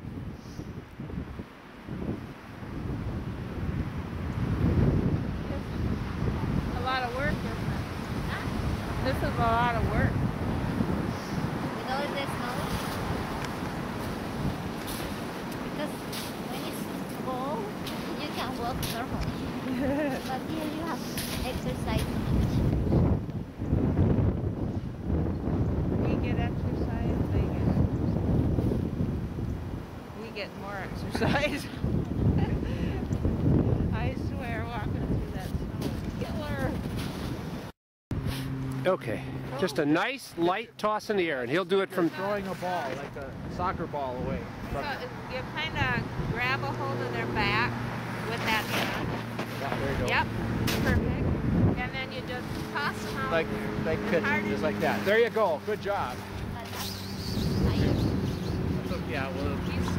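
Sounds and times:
wind buffeting microphone: 0.0 - 40.2, 41.8 - 59.9.

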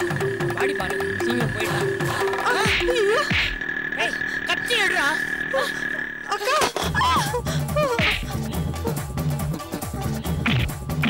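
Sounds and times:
warbling synth chirps: 0.0 - 6.6
comic synthesizer music: 0.0 - 11.0.

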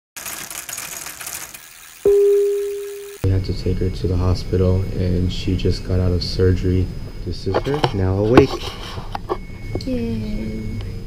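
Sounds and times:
rapid irregular clicking and crackling: 0.2 - 2.1.

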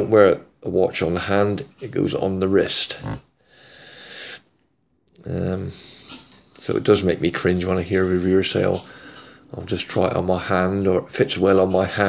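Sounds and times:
man breathing in: 3.4 - 4.4, 8.8 - 9.5.

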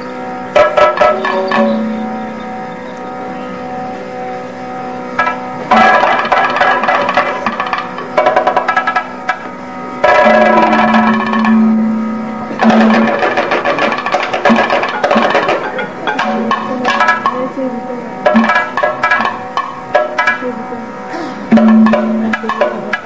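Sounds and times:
small cymbals ringing: 0.0 - 23.0
steady drone: 0.0 - 23.0.

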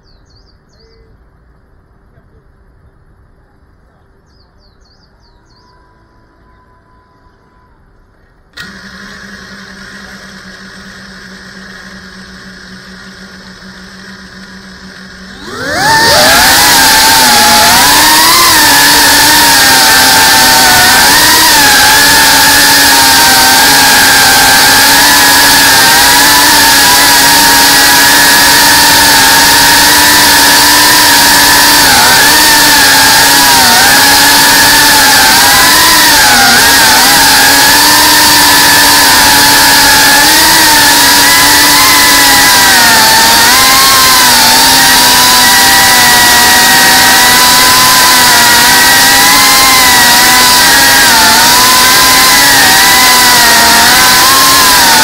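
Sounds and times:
drone motors whining: 4.6 - 55.0.

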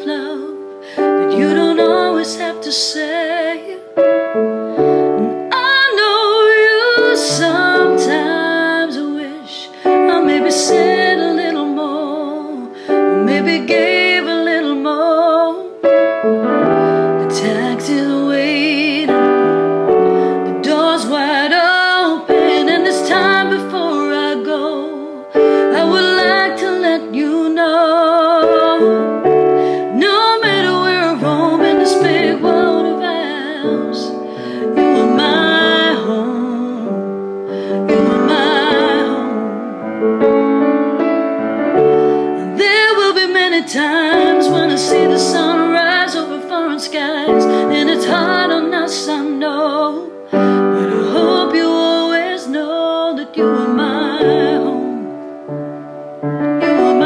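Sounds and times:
woman singing with vibrato: 0.0 - 40.6, 41.7 - 55.4, 56.5 - 57.0
piano chords: 0.0 - 57.0
instrumental accompaniment: 28.0 - 46.5.

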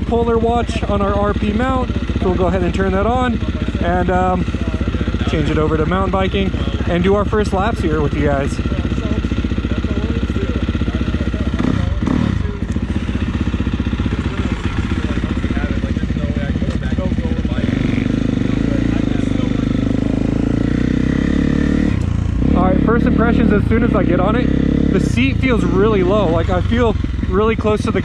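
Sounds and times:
motorcycle engine idling and pulling away: 0.0 - 28.0.

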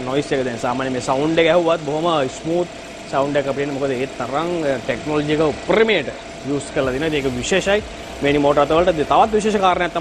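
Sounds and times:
faint hum: 0.0 - 10.0
man talking: 0.0 - 10.0.

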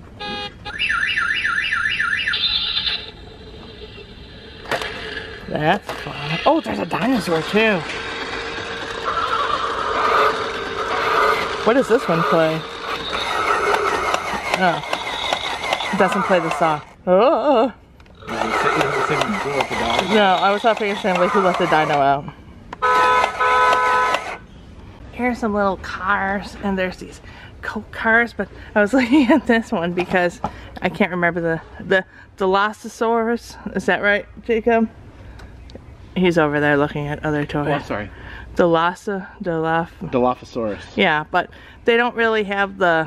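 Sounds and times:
toy warbling siren: 0.2 - 5.3, 8.6 - 16.8, 18.2 - 22.0.

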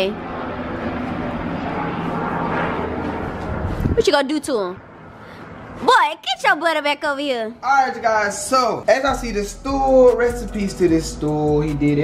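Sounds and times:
airplane flying overhead: 0.0 - 12.0.

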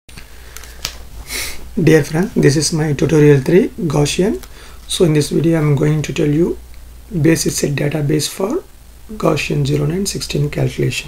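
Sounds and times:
breath drawn in: 0.2 - 1.7
person speaking: 1.3 - 11.0.

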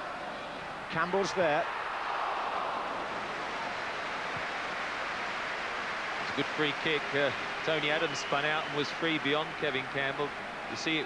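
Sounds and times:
stadium crowd roaring: 0.0 - 11.0.

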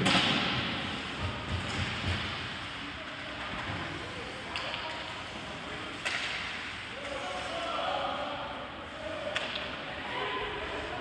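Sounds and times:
stick and puck cracks: 6.0 - 6.5, 9.3 - 9.7.

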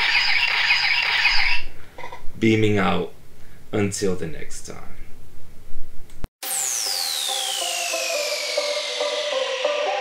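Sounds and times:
transporter beam sound effect: 6.4 - 10.0.

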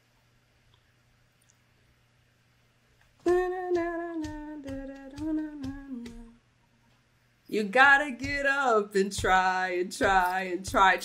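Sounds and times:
woman humming a tune: 3.3 - 6.4.

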